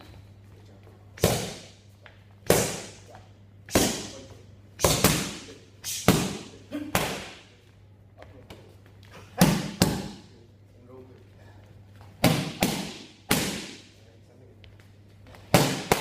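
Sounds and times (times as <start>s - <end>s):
boxing gloves smacking mitts: 1.2s - 1.8s, 9.2s - 10.3s, 12.0s - 13.9s, 15.3s - 16.0s.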